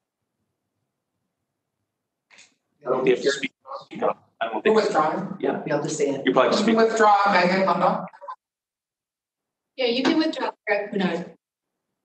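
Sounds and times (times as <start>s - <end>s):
person speaking: 2.8s - 8.4s.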